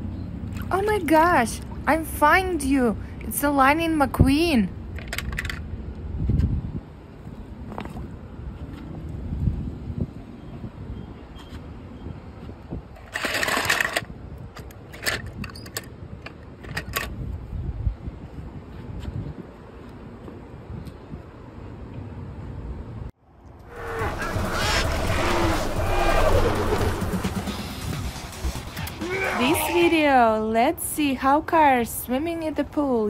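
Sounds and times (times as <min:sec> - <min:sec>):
toy cars clinking and clattering: 0:13.0 - 0:15.9
low rumble: 0:23.2 - 0:29.2.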